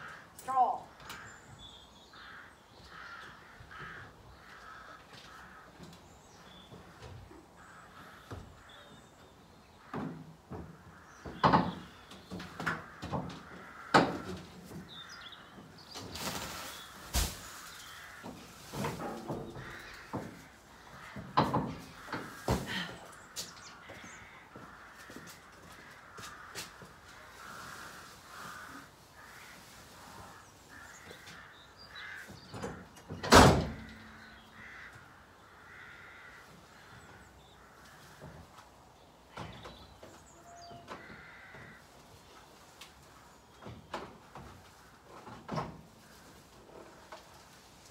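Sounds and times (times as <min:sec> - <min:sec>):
crows cawing: 0:00.0 - 0:09.1, 0:09.7 - 0:15.8, 0:16.8 - 0:33.0, 0:33.8 - 0:38.6, 0:40.4 - 0:42.3
straw bales knocking and thumping: 0:15.6 - 0:23.0.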